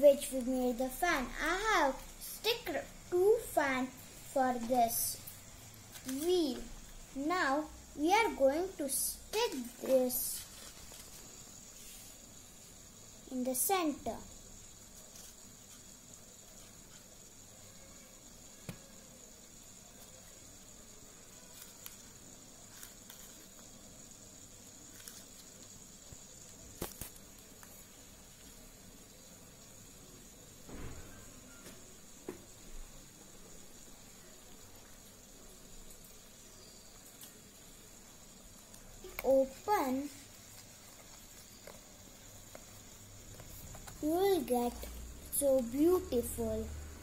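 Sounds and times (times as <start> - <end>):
faint high hiss: 0.0 - 47.0
paper rustling: 9.6 - 11.3.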